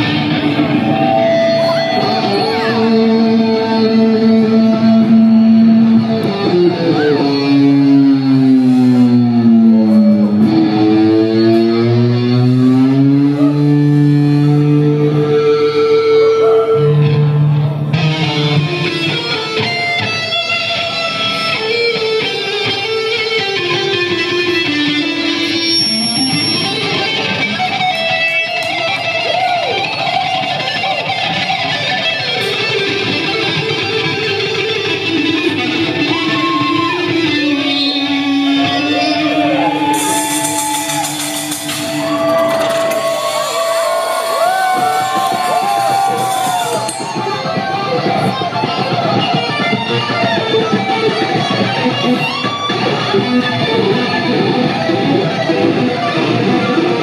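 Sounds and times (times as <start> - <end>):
electric guitars playing: 0.0 - 57.0.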